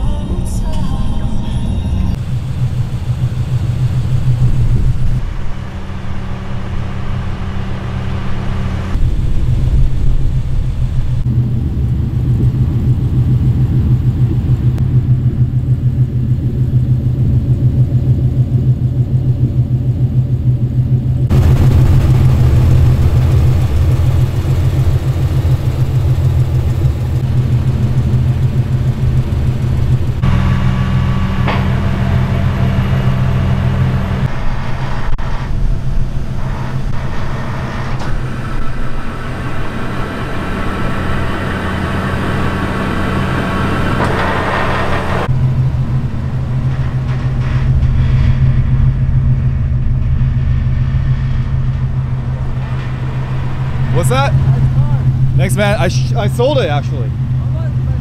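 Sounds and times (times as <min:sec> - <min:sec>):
rotary engine idling: 0:00.0 - 0:58.0.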